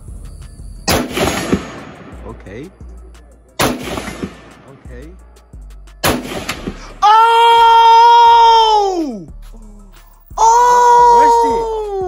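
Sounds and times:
background music: 0:00.0 - 0:12.0
rifle shot: 0:00.9 - 0:02.2, 0:03.6 - 0:04.7, 0:06.0 - 0:06.8.

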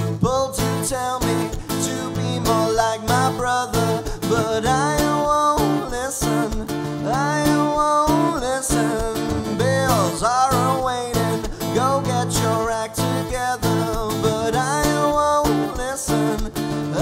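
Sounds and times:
acoustic guitar strumming: 0:00.0 - 0:17.0
man singing: 0:00.0 - 0:17.0.

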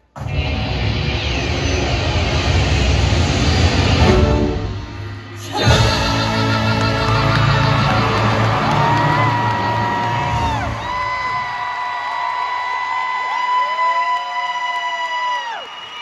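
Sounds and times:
audience whooping and cheering: 0:05.5 - 0:16.0.

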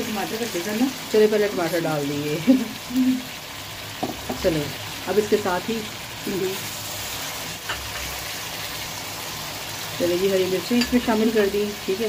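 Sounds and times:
food sizzling in a wok: 0:00.0 - 0:12.0.

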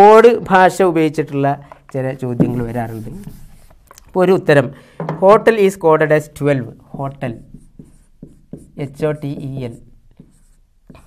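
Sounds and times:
man speaking: 0:00.0 - 0:03.4
marker writing on whiteboard: 0:01.7 - 0:03.8, 0:06.9 - 0:11.0.

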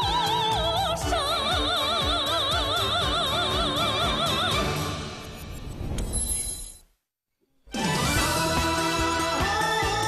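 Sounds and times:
woman singing with vibrato: 0:00.0 - 0:04.9
pop band playing: 0:07.8 - 0:10.0.

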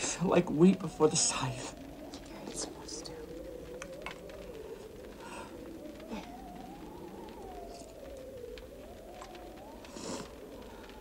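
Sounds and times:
soft wavering held tone: 0:00.2 - 0:11.0
person speaking quietly: 0:01.4 - 0:03.4.

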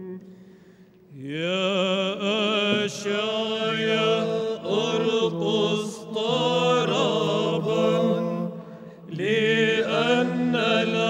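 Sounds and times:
men singing chant: 0:01.3 - 0:11.0.

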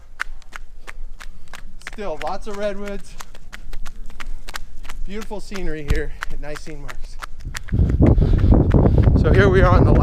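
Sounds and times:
footsteps running on pavement: 0:00.0 - 0:10.0.

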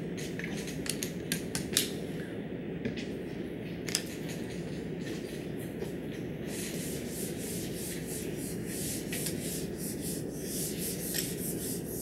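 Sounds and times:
eraser rubbing on whiteboard: 0:06.5 - 0:12.0.

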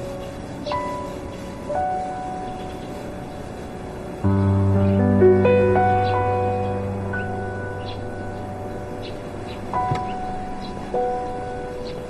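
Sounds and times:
low hum of street traffic: 0:00.0 - 0:12.0.

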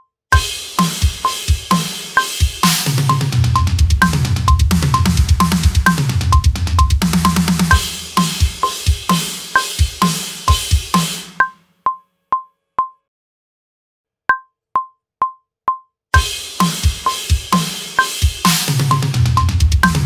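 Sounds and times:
drum kit playing: 0:00.4 - 0:11.5, 0:16.2 - 0:20.0.

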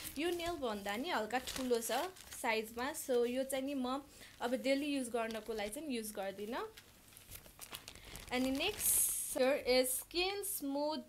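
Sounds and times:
plastic packaging rustling: 0:00.0 - 0:10.2
plastic crinkle: 0:00.0 - 0:10.4.

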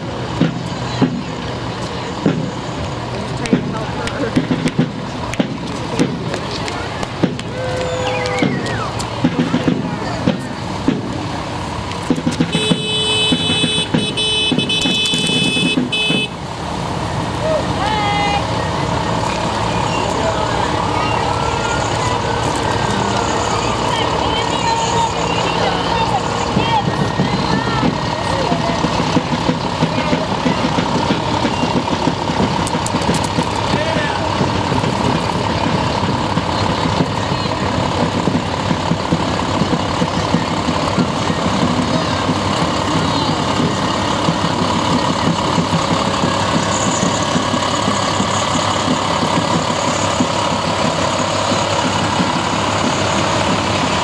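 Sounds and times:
spectators chatting: 0:00.0 - 0:54.0
vehicle engines driving slowly: 0:00.0 - 0:54.0
vehicle horn held: 0:12.5 - 0:16.4.

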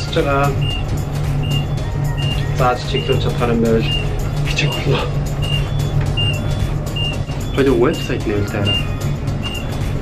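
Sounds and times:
steady low hum: 0:00.0 - 0:10.0
high electronic beep: 0:00.5 - 0:09.9.

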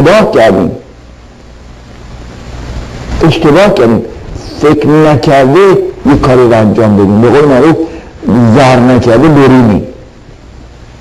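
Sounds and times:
faint background hiss: 0:00.0 - 0:11.0
low hum: 0:00.0 - 0:11.0.

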